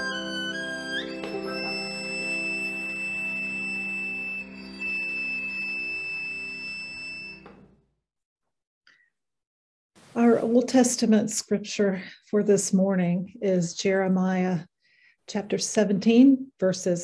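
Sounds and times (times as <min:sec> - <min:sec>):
church organ music: 0:00.0 - 0:07.8.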